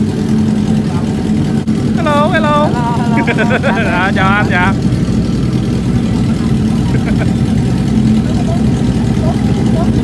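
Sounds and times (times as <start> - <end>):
motorcycle engines idling: 0.0 - 10.0.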